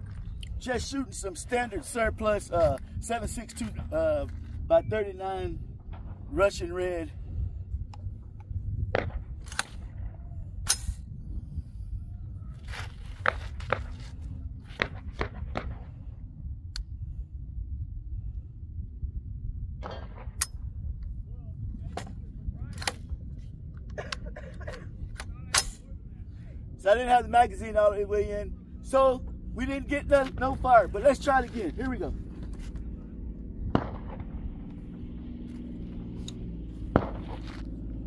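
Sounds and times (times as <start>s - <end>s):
wind rumbling on microphone: 0.0s - 38.0s.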